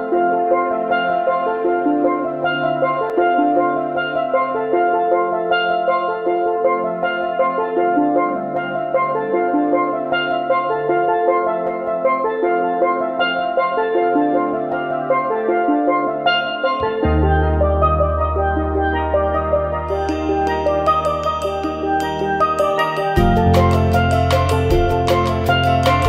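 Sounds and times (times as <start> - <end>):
melodic instrumental music: 0.0 - 26.0.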